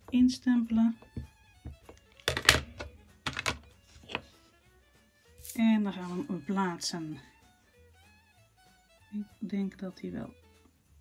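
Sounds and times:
quiet violin music: 0.0s - 11.0s.

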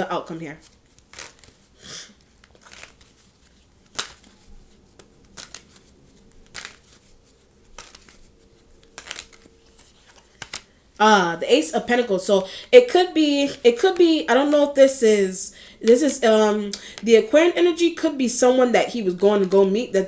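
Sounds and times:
cards being shuffled: 0.6s - 10.8s.

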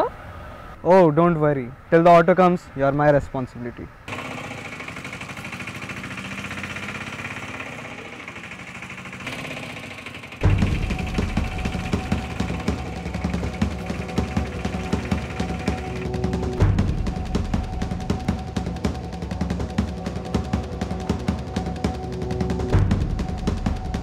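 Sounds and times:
auto-rickshaw engine running: 4.1s - 24.0s
loud music with pulsing beat: 10.4s - 24.0s.

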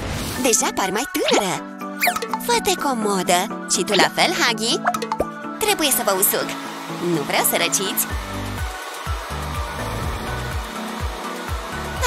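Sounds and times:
hair dryer blowing: 5.6s - 12.0s
music with bass line: 8.1s - 12.0s.

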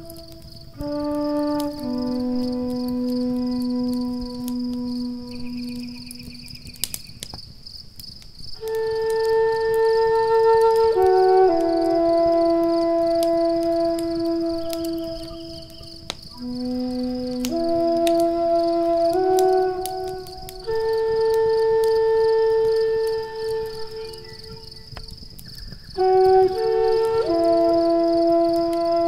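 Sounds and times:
flute long held notes: 0.0s - 7.3s, 8.6s - 29.0s
wood fire crackling: 0.0s - 29.0s
high chirping: 14.6s - 16.4s.

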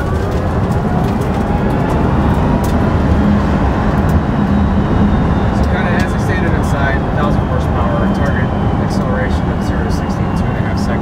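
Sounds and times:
road and tyre noise: 0.0s - 11.0s.

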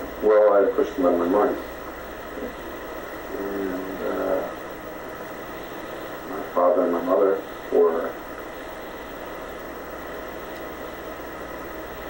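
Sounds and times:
tape hiss: 0.0s - 12.0s
man speaking softly: 3.3s - 4.6s.

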